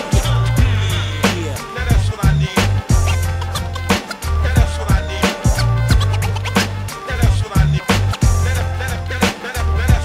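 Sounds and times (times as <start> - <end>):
deep bass line: 0.0 - 10.0
hip hop drum beat: 0.0 - 10.0
turntable scratches: 0.0 - 10.0.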